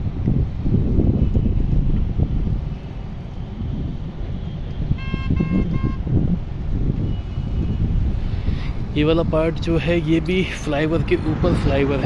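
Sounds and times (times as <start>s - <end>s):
vehicle road and wind rumble: 0.0s - 12.0s
vehicle horn beeps: 3.6s - 6.2s, 7.0s - 7.9s.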